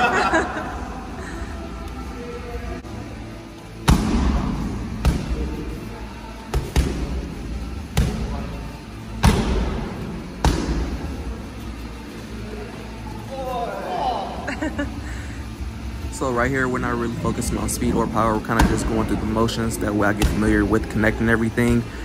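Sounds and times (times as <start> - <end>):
gym room noise: 0.0 - 22.0
strikes slapping on pads: 3.8 - 5.4, 6.5 - 7.2, 9.2 - 9.8, 10.4 - 10.9.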